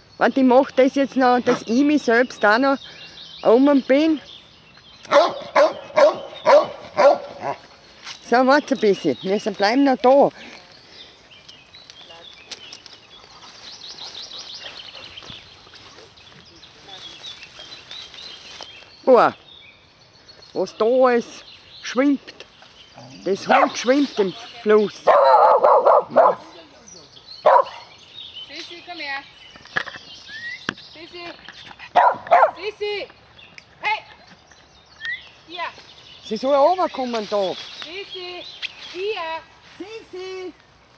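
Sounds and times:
dog barking: 5.1 - 7.6, 23.5 - 23.8, 25.1 - 26.6, 27.4 - 27.9, 31.9 - 32.6.

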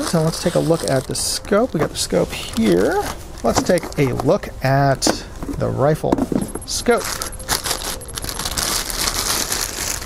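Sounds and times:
plastic bag crinkling: 0.0 - 1.7, 7.0 - 10.0.

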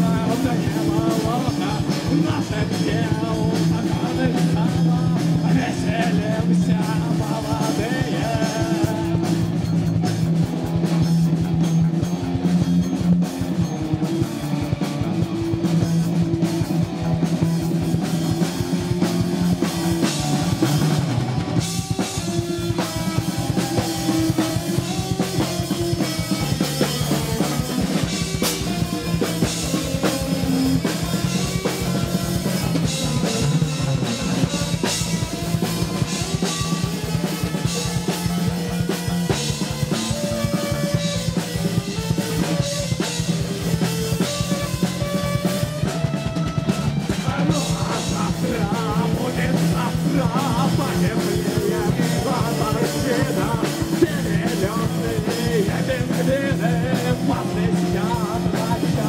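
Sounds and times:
bass guitar low notes: 0.0 - 59.0
drum kit: 0.0 - 59.0
electric guitar: 0.0 - 59.0.

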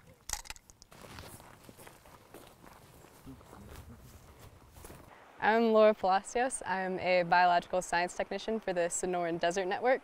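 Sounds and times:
footsteps on gravel: 0.9 - 5.1.

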